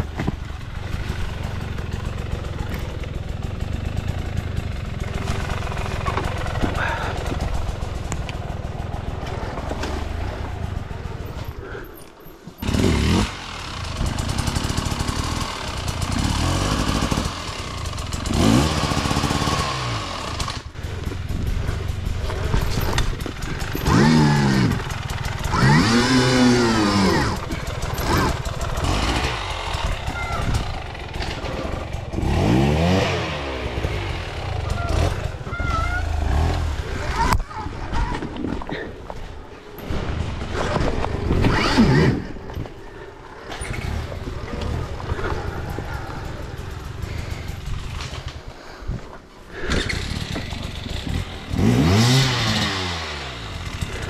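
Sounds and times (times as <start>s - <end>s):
bike knocking over rough ground: 0.0s - 3.0s.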